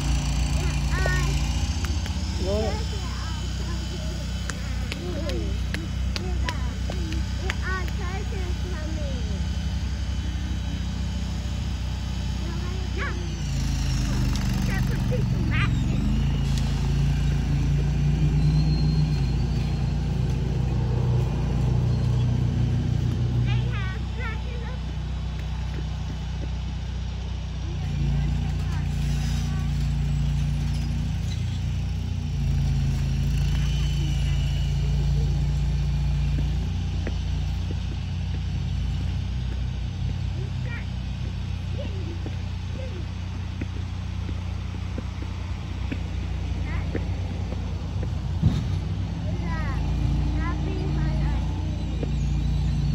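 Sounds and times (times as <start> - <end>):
vehicle engine running: 0.0 - 52.9.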